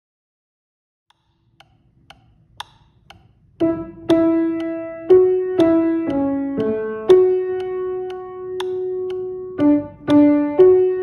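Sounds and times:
metronome ticking: 0:01.1 - 0:11.0
piano playing: 0:03.6 - 0:11.0.

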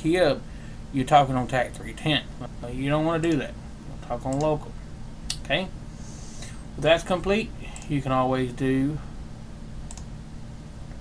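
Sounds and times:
steady low hum: 0:00.0 - 0:11.0
computer mouse click: 0:09.9 - 0:10.1.

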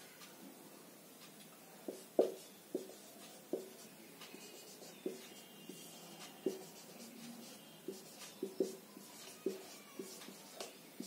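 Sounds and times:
marker squeaking on whiteboard: 0:01.9 - 0:11.0.

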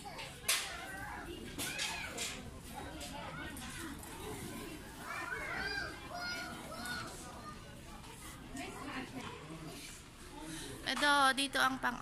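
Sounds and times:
children calling and chattering: 0:00.0 - 0:10.9.

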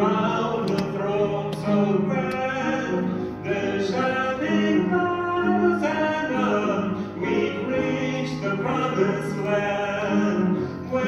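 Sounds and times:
male trio singing gospel: 0:00.0 - 0:11.0.

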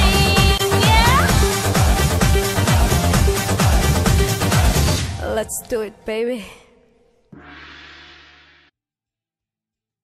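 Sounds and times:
dance song: 0:00.0 - 0:05.4.

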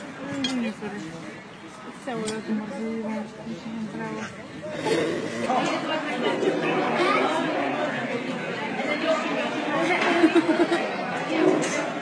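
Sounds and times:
chatter of many voices: 0:00.0 - 0:12.0.

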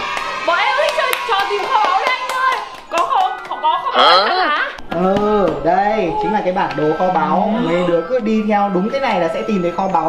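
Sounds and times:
young voices exclaiming: 0:00.0 - 0:04.8
hand claps: 0:00.1 - 0:03.6, 0:04.8 - 0:06.9.

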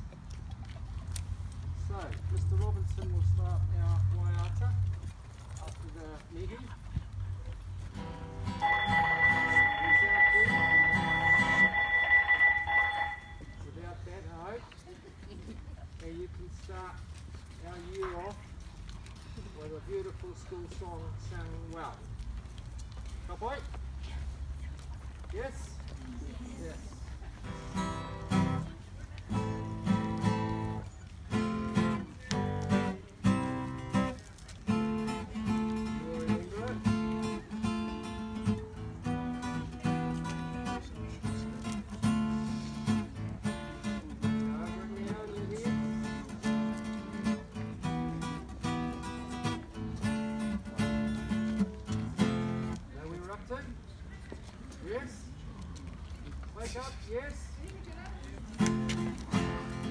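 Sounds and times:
acoustic guitar strumming: 0:07.9 - 0:13.6, 0:27.4 - 0:52.8, 0:58.6 - 0:59.9.

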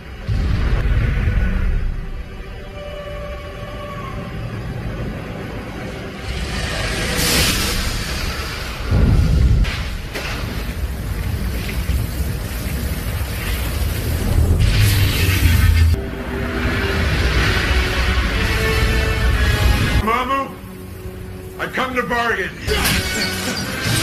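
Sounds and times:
film score music: 0:00.0 - 0:24.0
heavy low hit: 0:07.2 - 0:10.1.

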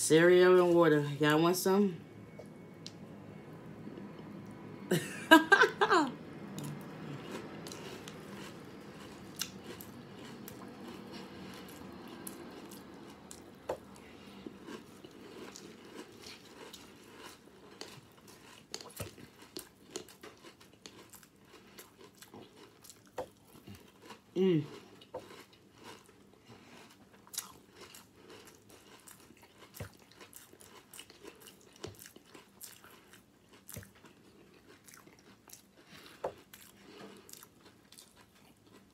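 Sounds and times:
person chewing soft cereal: 0:05.7 - 0:38.9.

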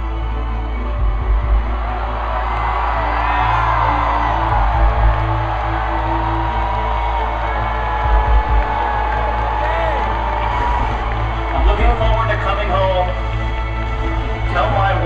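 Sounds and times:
crowd cheering and whooping: 0:00.0 - 0:15.0.

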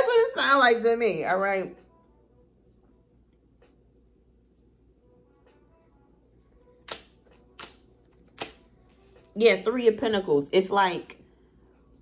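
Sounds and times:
cards snapping on a table: 0:06.8 - 0:08.6.

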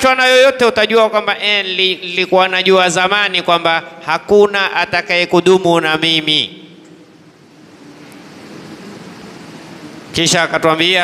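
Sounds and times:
room and microphone hiss: 0:00.0 - 0:11.0.

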